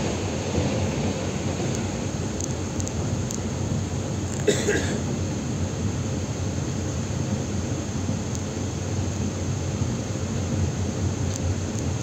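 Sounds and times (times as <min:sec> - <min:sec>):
train passing alongside: 0:00.0 - 0:12.0
train running rumble: 0:00.0 - 0:12.0.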